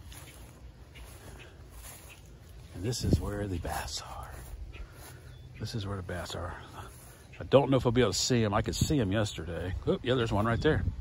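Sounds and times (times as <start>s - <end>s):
faint footsteps through grass: 0.0s - 11.0s.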